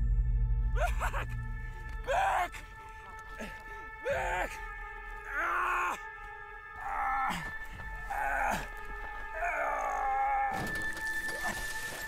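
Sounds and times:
film score of sustained tones: 0.0 - 12.0
man groaning in pain: 0.8 - 1.3.

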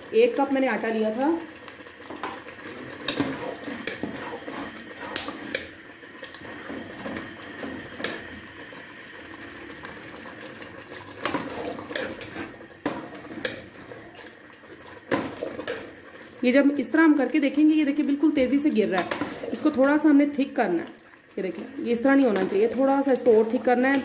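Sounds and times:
metal ladle scraping through greens: 2.2 - 5.7, 11.2 - 14.2, 18.9 - 19.8.

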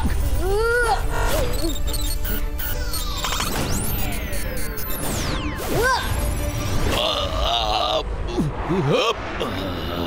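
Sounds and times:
cartoon background music: 0.0 - 8.0.

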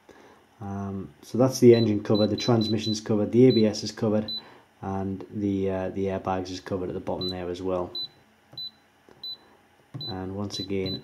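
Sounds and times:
short high key-press beeps: 7.2 - 9.4, 10.0 - 11.0.

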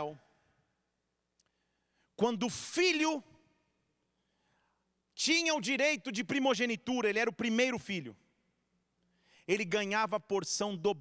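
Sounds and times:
man's amplified speech: 0.0 - 0.5, 2.1 - 3.8, 5.1 - 8.3, 9.3 - 11.0.

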